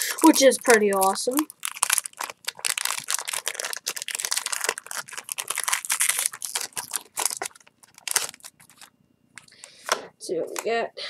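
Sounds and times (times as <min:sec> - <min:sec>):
foil wrapper crinkling and tearing: 0:00.0 - 0:10.0.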